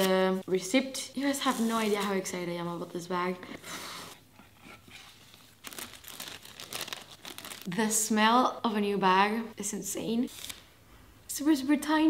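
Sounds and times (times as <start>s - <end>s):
tissue paper crinkling: 5.0s - 7.7s.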